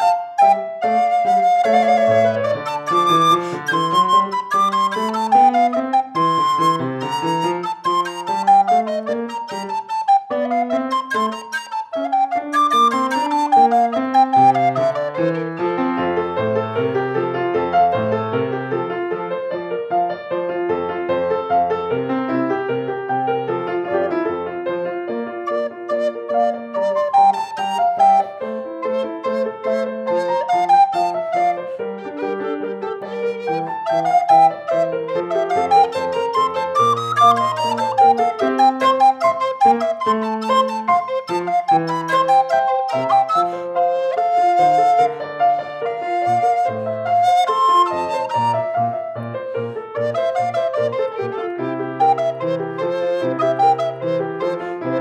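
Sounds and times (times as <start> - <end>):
recorder and keyboard playing: 0.0 - 16.4, 25.4 - 55.0.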